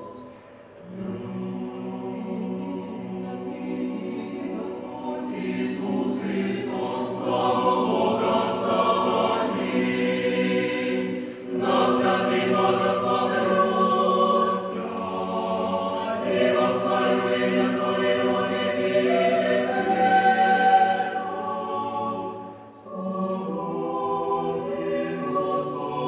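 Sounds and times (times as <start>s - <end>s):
choir singing a cappella: 0.0s - 26.0s.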